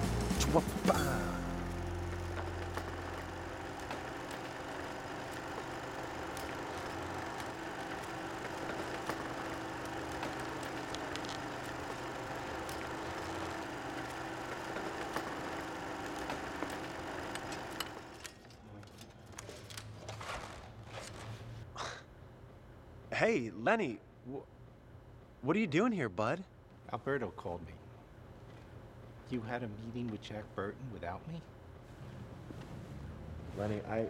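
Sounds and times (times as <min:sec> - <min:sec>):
film projector whirring: 0:00.0 - 0:21.2.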